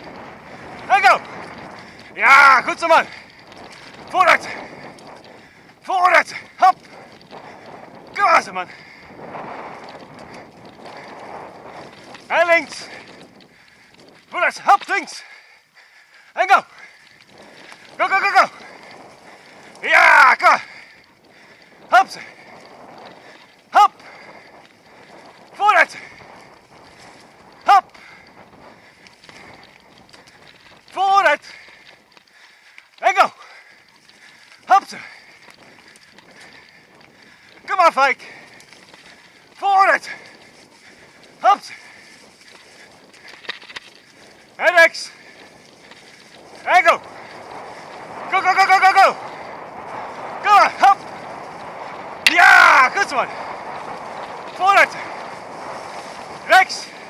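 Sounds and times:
bicycle rattles: 0.0 - 57.0
wind on microphone: 0.0 - 57.0
person shouting to a dog: 23.8 - 24.0, 27.7 - 27.9, 48.3 - 49.2, 52.3 - 53.2.

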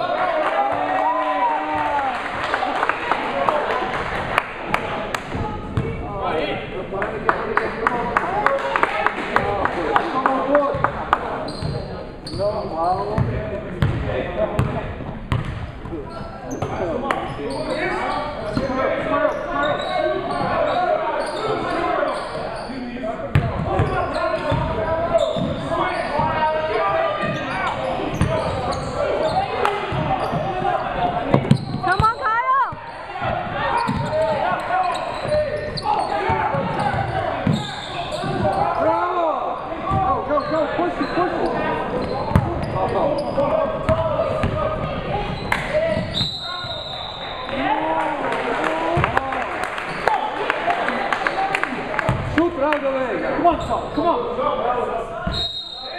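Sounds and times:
voices echoing in a hall: 0.0 - 55.9.

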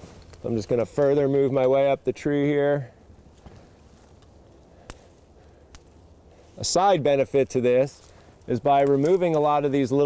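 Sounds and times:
dry twigs snapping: 0.0 - 1.8, 3.2 - 6.4, 7.8 - 10.0.

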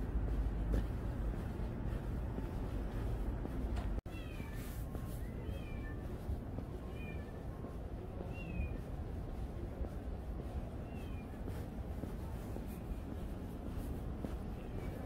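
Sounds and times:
low city rumble: 0.0 - 15.0.

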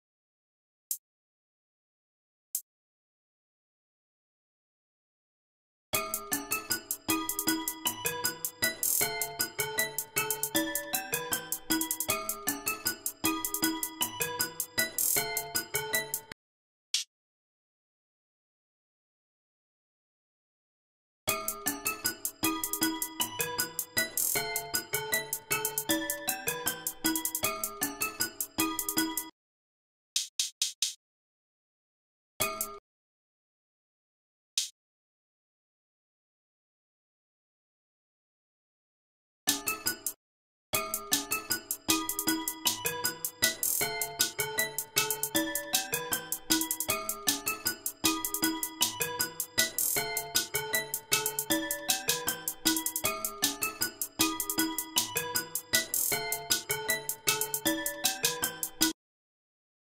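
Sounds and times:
keyboard melody: 6.0 - 16.4, 21.3 - 29.3, 39.5 - 40.2, 40.8 - 59.0
electronic hi-hat beat: 6.2 - 16.3, 21.5 - 29.3, 40.9 - 59.0.

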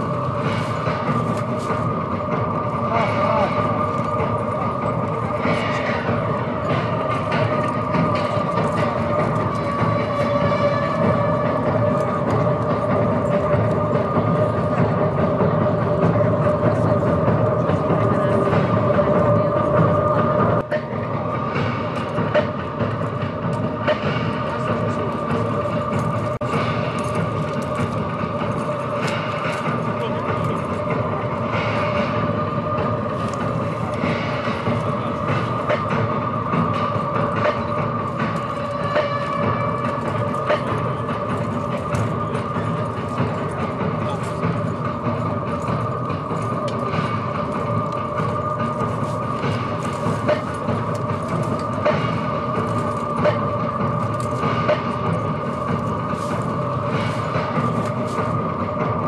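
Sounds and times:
murmur of voices: 0.0 - 59.0
sombre droning music: 0.0 - 59.0.

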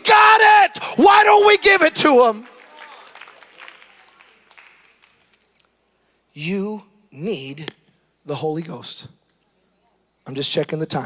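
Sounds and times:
faint applause: 2.2 - 5.5.

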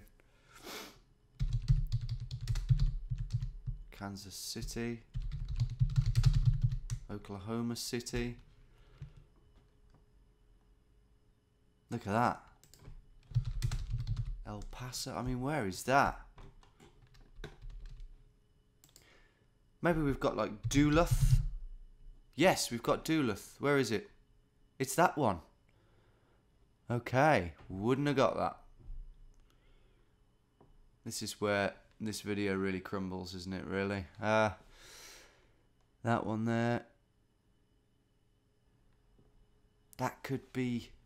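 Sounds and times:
short breathy hiss: 0.4 - 1.0
fast keyboard typing: 1.4 - 4.0, 4.6 - 7.3, 12.6 - 15.4, 16.3 - 18.2, 20.5 - 21.6
man speaking: 3.9 - 5.1, 7.1 - 8.4, 14.4 - 16.2, 19.8 - 21.4, 22.4 - 24.1, 40.0 - 41.0.

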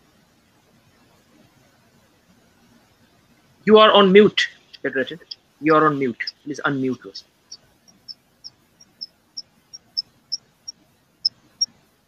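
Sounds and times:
high-pitched chirps: 8.8 - 9.1.

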